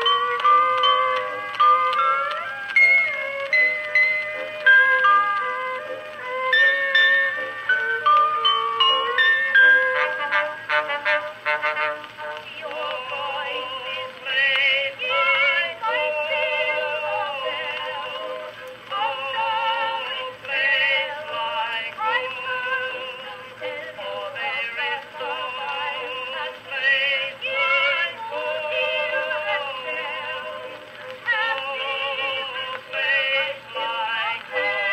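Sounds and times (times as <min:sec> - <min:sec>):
orchestral passage on phonograph: 0:00.0 - 0:34.9
singing with strong vibrato: 0:00.0 - 0:34.9.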